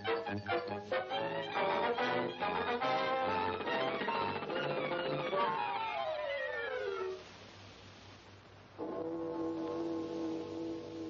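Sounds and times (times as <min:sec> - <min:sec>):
held brass chord: 0:00.0 - 0:05.6
hiss: 0:09.4 - 0:11.0.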